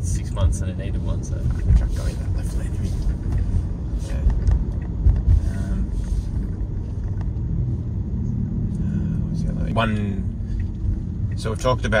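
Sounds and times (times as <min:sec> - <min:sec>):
road and tyre rumble in car: 0:00.0 - 0:12.0.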